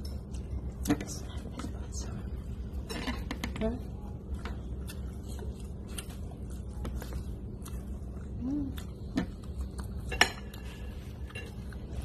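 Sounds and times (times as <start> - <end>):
low background hum: 0.0 - 12.0
cutlery clinking on dishes: 10.1 - 11.8.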